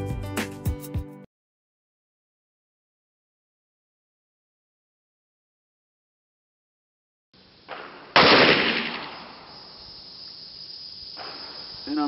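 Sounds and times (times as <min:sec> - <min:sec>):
pistol shot: 0:07.7 - 0:09.5.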